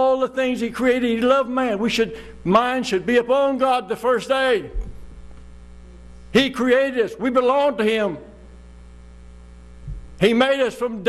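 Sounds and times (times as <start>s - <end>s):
low mains hum: 0.0s - 11.0s
low thump: 9.8s - 10.1s.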